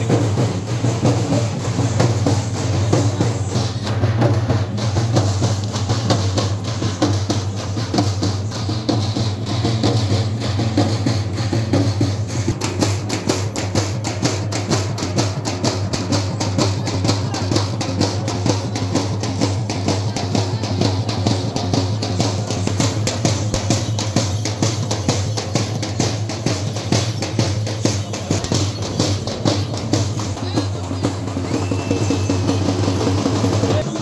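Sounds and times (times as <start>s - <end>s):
crowd voices: 0.0s - 34.0s
procession drums beating: 0.0s - 34.0s.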